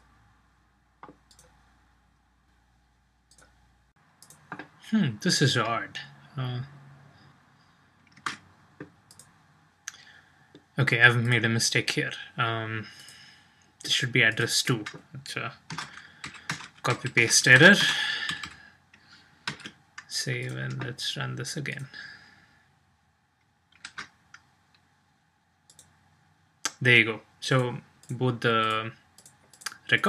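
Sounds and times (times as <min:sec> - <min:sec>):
computer mouse clicks: 0:01.0 - 0:01.6, 0:04.2 - 0:04.7, 0:08.0 - 0:09.3, 0:25.7 - 0:26.0, 0:28.0 - 0:29.8
keyboard typing: 0:08.0 - 0:09.3, 0:14.7 - 0:18.6, 0:19.4 - 0:20.9, 0:23.7 - 0:24.4.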